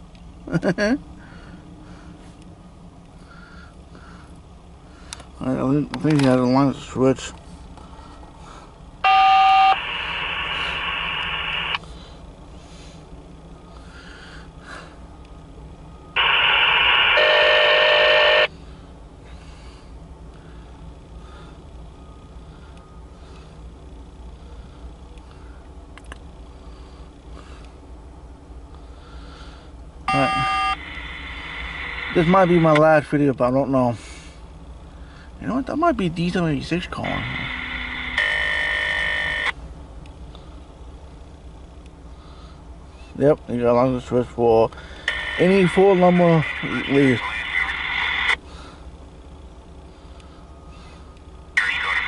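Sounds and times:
locomotive rumble: 0.0 - 52.0
shrill scanner radio tone: 9.0 - 11.8, 16.1 - 18.5, 30.1 - 32.8, 37.0 - 39.6, 45.1 - 48.4, 51.5 - 52.0
locomotive air horn blast: 16.2 - 18.5.

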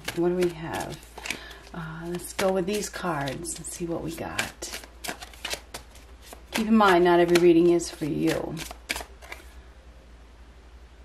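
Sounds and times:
card turned over: 0.0 - 9.5
low steady hum: 0.0 - 11.0.

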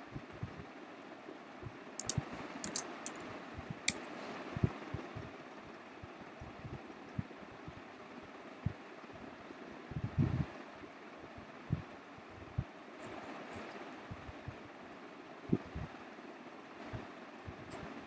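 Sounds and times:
microphone hiss: 0.0 - 18.0
keyboard and mouse clicks: 2.0 - 3.3.

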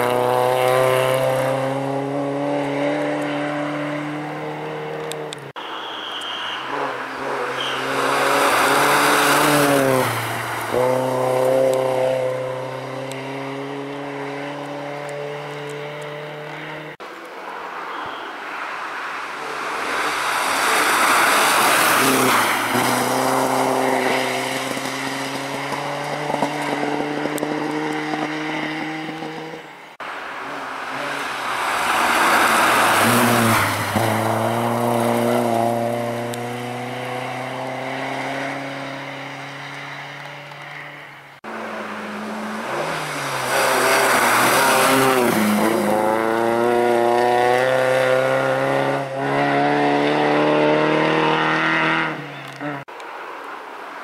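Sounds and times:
rally car engines passing: 0.0 - 5.6, 6.2 - 52.9.

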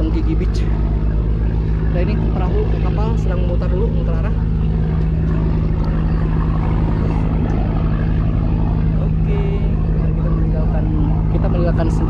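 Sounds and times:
boat engines droning: 0.0 - 12.0.

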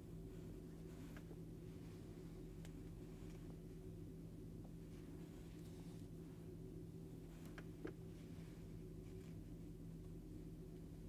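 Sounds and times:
soft yarn rustling: 0.0 - 11.0
steady low hum: 0.0 - 11.0.

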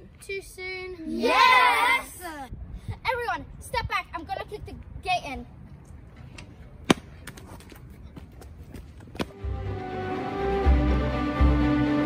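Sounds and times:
faint outdoor background: 0.0 - 12.0
music: 9.3 - 12.0.

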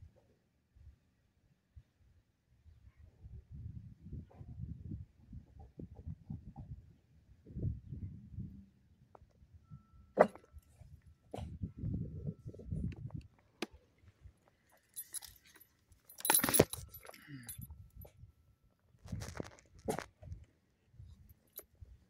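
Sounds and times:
dog tags jingling: 14.8 - 17.7.

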